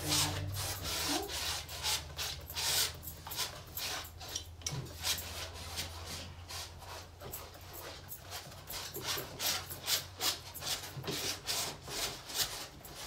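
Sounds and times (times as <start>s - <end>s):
palette knife scraping paint on canvas: 0.0s - 13.0s.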